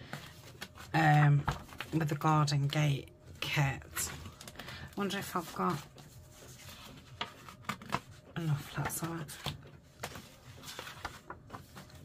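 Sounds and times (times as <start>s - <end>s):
paper sheets rustling: 0.0s - 2.3s, 3.9s - 12.0s.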